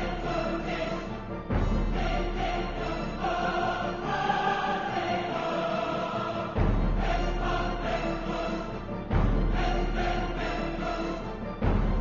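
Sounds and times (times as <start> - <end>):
choir singing long held notes: 0.0 - 12.0.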